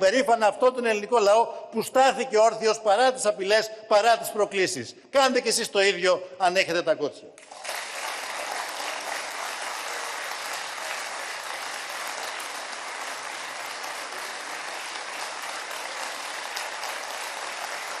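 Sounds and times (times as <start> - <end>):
large crowd applause: 7.4 - 18.0.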